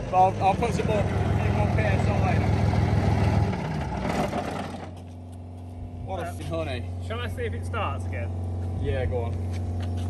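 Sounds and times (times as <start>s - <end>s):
straight-piped engine running hard: 0.0s - 10.0s.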